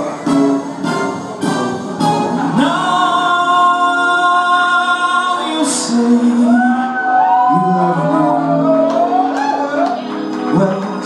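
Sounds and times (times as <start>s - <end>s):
jazz backing music: 0.0s - 6.4s
man singing: 2.4s - 9.3s, 10.4s - 11.0s.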